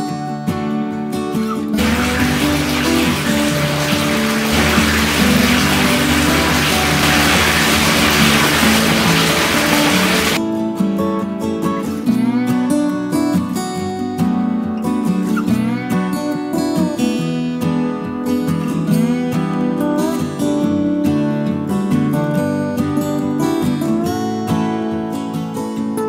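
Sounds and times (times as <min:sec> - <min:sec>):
acoustic guitar music: 0:00.0 - 0:26.0
water pouring into a bath: 0:01.8 - 0:10.4.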